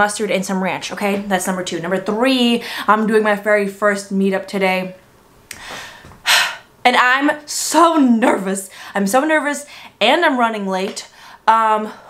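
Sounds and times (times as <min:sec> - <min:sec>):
woman breathing in: 0:05.5 - 0:06.7.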